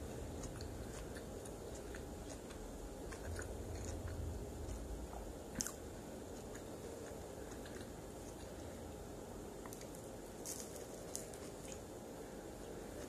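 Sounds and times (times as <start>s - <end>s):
close chewing crunches: 0.0s - 8.8s, 9.6s - 11.9s.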